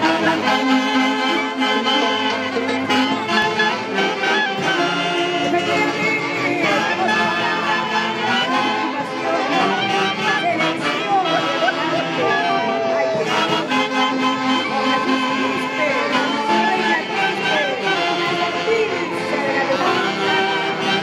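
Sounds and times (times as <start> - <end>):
crowd voices: 0.0 - 21.0
folk band with saxophones: 0.0 - 21.0.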